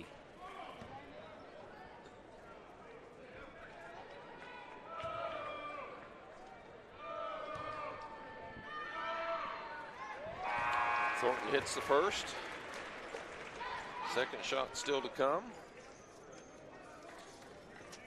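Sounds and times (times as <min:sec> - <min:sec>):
crowd voices: 0:00.0 - 0:18.0.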